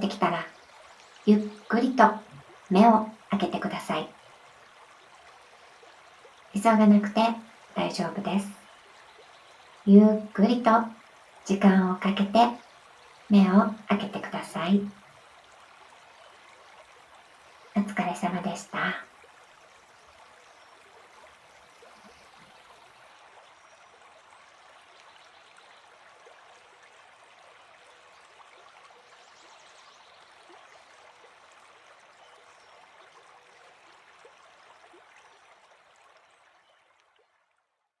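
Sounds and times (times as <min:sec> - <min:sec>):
stream babbling: 0:00.0 - 0:37.8.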